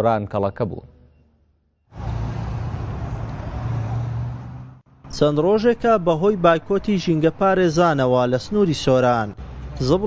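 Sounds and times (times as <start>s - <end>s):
city street traffic rumble: 1.9s - 10.0s.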